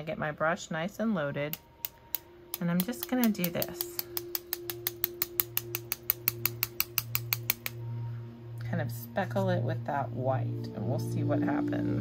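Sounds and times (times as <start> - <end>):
paintbrush tapping on pencil: 1.5 - 7.8.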